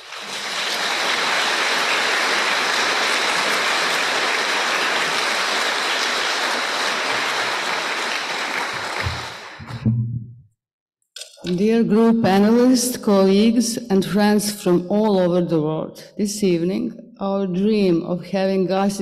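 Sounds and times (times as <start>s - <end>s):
audience applauding: 0.0s - 9.8s.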